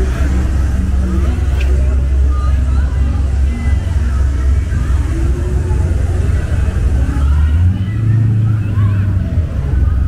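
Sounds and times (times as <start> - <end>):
car engine rumbling: 0.0 - 10.0
faint voices of passers-by: 0.0 - 10.0.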